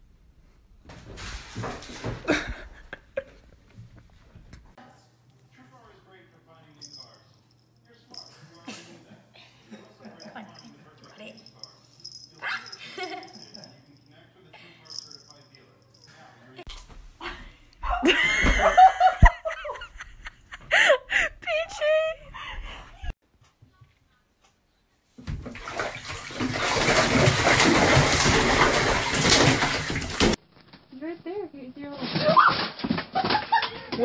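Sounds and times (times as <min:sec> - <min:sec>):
dog yipping: 0:12.3 - 0:12.8.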